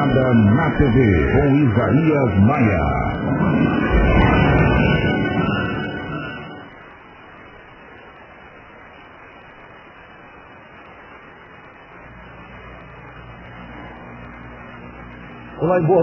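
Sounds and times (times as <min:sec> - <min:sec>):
analogue tv static hiss: 0:00.0 - 0:16.0
low hum: 0:00.0 - 0:16.0.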